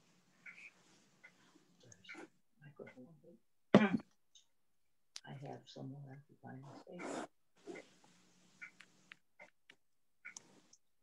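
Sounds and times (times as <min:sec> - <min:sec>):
muffled voice speaking: 0:05.2 - 0:07.3.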